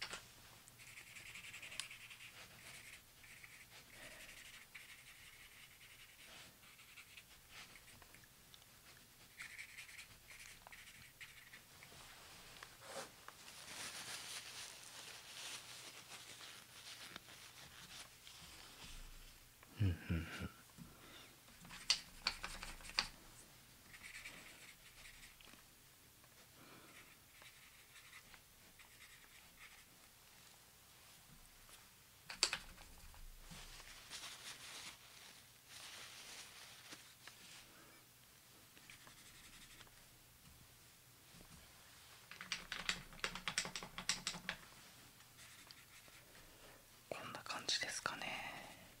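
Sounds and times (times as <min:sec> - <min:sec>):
brush strokes on paper: 0:00.5 - 0:08.2, 0:08.8 - 0:19.4, 0:26.4 - 0:31.8, 0:38.8 - 0:39.9, 0:44.7 - 0:46.9.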